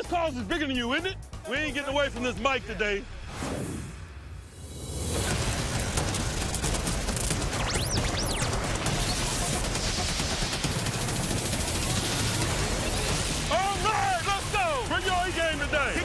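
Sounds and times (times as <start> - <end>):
dense rush of crackling noise: 4.6 - 16.0.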